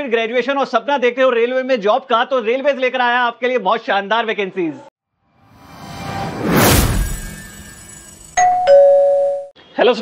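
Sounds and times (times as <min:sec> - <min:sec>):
two-note doorbell chime: 0:08.4 - 0:09.5.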